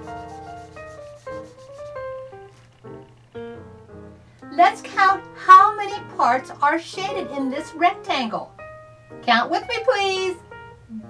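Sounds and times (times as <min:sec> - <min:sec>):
marker scribbling on paper: 0:00.0 - 0:02.2
soft melodic background music: 0:00.0 - 0:11.0.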